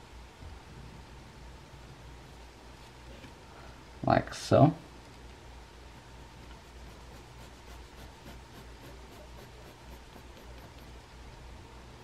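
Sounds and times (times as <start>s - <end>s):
pencil scratching on paper: 6.4s - 11.1s.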